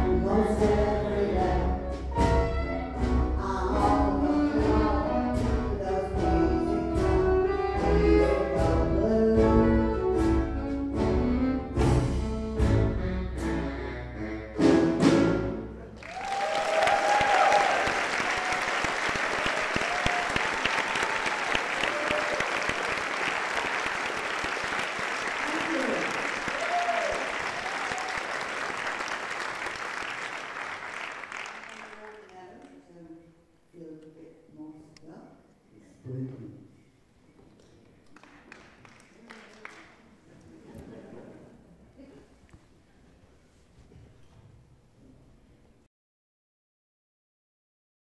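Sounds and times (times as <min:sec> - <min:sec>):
live band playing: 0:00.0 - 0:15.9
audience shouts: 0:16.0 - 0:22.9, 0:25.4 - 0:28.4
audience applause: 0:16.0 - 0:32.4, 0:38.0 - 0:40.3.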